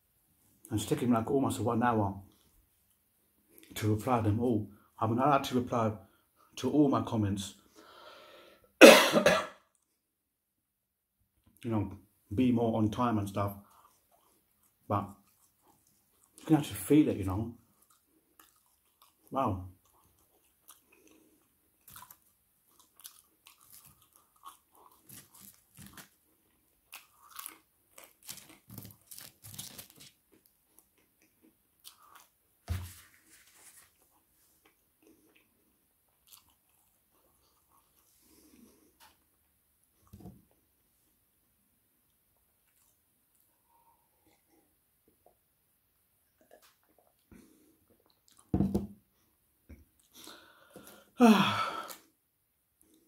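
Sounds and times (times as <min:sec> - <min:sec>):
chewing chips: 0:17.6 - 0:32.4, 0:33.2 - 0:38.6.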